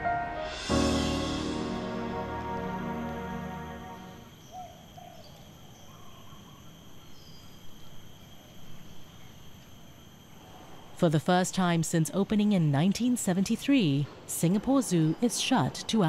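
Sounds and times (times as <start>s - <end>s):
background music: 0.0s - 4.3s
high insect drone: 0.0s - 16.0s
faint bird chirps: 4.3s - 9.4s.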